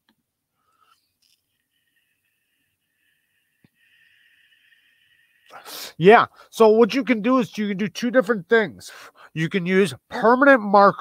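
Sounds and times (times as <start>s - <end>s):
sharp intake of breath: 1.7s - 6.6s, 8.9s - 9.4s
man speaking: 5.6s - 11.0s.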